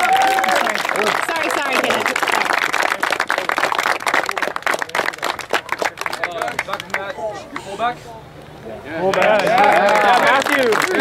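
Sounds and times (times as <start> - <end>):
people shouting and cheering: 0.0 - 2.0
people clapping: 0.0 - 7.7, 9.0 - 11.0.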